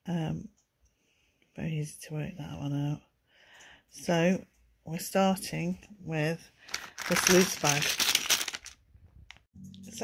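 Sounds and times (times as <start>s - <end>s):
plastic bag of toy bricks rattling: 6.7s - 9.4s.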